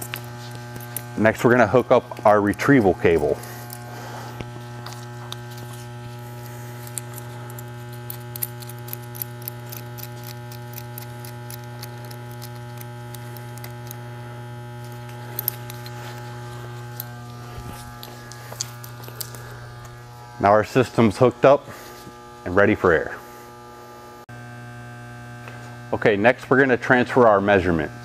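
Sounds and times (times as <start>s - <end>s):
steady electrical hum: 0.0s - 28.0s
metal clip clicking and rattling: 6.8s - 14.0s, 14.8s - 19.4s.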